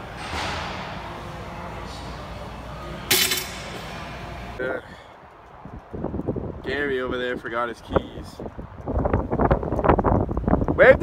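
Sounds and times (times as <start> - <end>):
gym background noise: 0.0 - 10.9
metallic clank of weight plates: 3.1 - 3.8.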